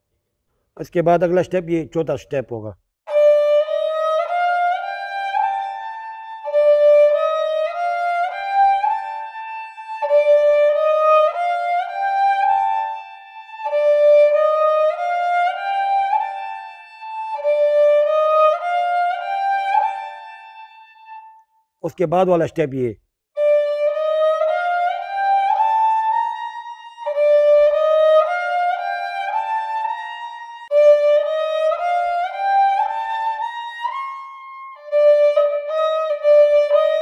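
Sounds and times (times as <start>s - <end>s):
bowed fiddle playing scale: 3.1s - 21.4s, 23.4s - 37.0s.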